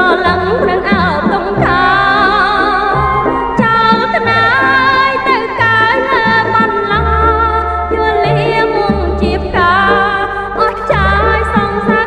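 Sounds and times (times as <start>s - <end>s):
person singing with vibrato: 0.0s - 12.0s
pop band with bass: 0.0s - 12.0s.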